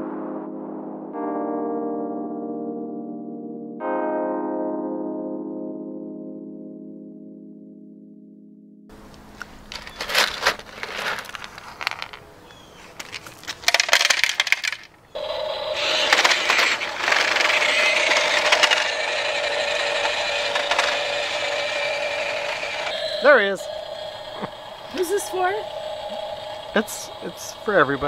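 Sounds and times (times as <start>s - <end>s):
pebbles clattering: 9.4s - 15.0s
toy truck motor whirring: 13.7s - 27.2s.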